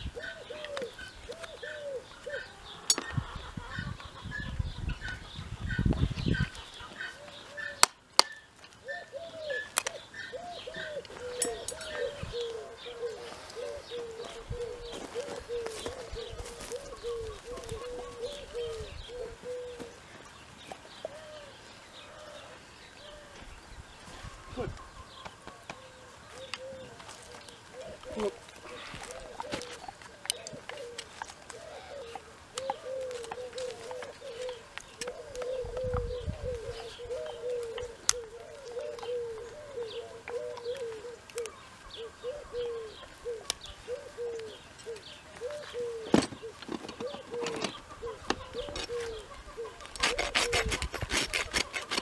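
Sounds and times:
birds calling: 0.0s - 52.0s
pigeons cooing: 0.0s - 52.0s.

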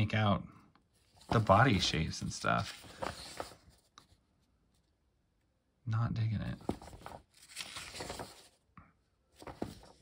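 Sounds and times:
paper rustling: 1.0s - 4.8s, 6.5s - 10.0s.

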